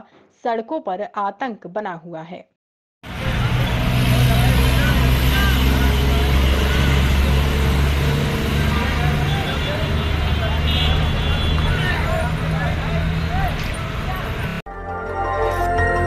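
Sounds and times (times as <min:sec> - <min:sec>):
busy road traffic: 0:03.0 - 0:14.7.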